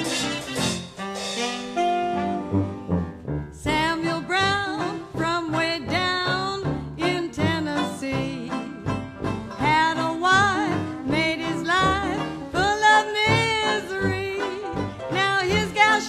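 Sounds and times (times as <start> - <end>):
jazz band playing blues: 0.0 - 16.0
banjo strumming: 3.7 - 16.0.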